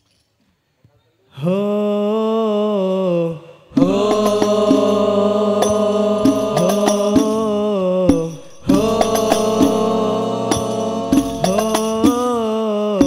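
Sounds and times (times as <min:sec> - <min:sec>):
voices chanting held notes: 0:01.5 - 0:13.0
frame drum strikes: 0:03.8 - 0:12.4.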